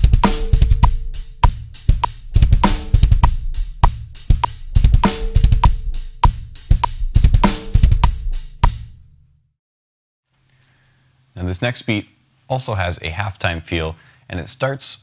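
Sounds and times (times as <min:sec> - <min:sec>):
rapid double bass drum runs: 0:00.0 - 0:09.0
drum kit playing: 0:00.0 - 0:09.1
metronome click: 0:03.8 - 0:05.8.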